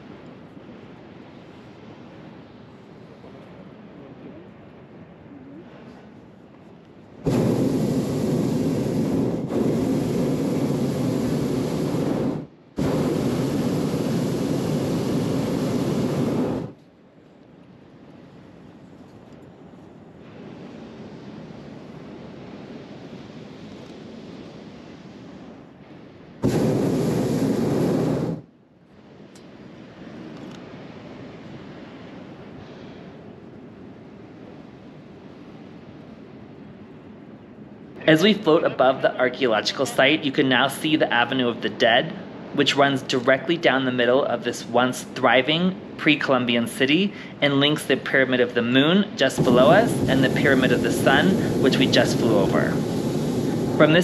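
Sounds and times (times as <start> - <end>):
wind rushing on microphone: 0.0 - 54.0
propane burner roaring: 7.1 - 16.9, 18.2 - 34.6, 36.9 - 54.0.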